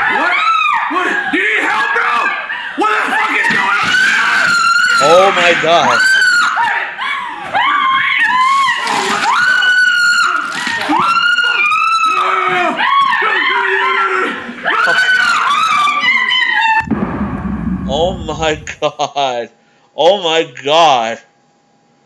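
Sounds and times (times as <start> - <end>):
woman screaming in panic: 6.0 - 14.1.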